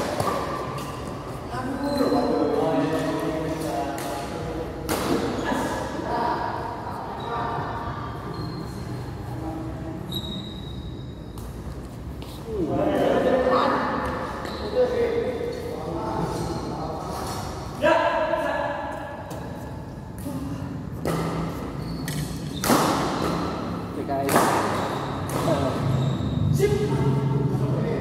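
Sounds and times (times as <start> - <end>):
rackets striking shuttlecock: 3.1 - 5.4, 21.0 - 23.6, 24.2 - 25.7.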